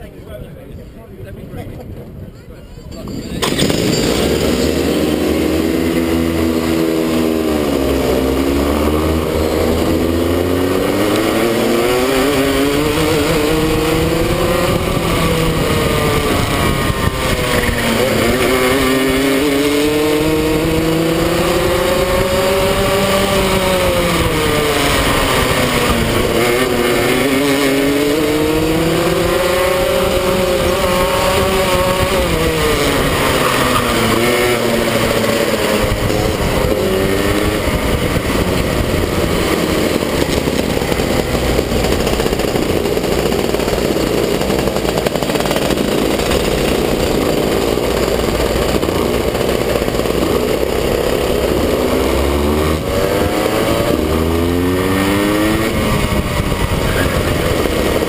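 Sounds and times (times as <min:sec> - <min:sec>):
kart engine revving: 0:03.4 - 0:58.0.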